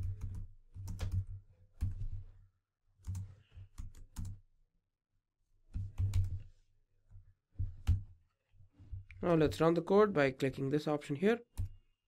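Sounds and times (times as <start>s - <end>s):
computer keyboard typing: 0.0s - 2.0s, 3.0s - 4.4s, 5.8s - 6.4s.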